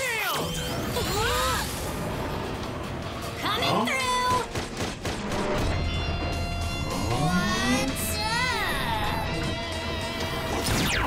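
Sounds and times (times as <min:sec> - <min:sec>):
cartoon background music: 0:03.0 - 0:11.0.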